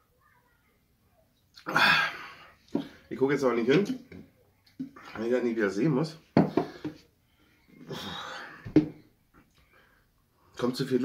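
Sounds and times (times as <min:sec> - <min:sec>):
man burping loudly: 0:01.6 - 0:02.4
heavy breathing out: 0:06.4 - 0:10.2.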